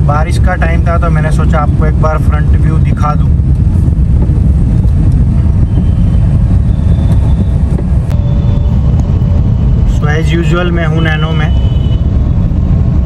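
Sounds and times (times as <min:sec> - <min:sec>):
car engine rumble: 0:00.0 - 0:13.0
road noise inside cabin: 0:00.0 - 0:13.0.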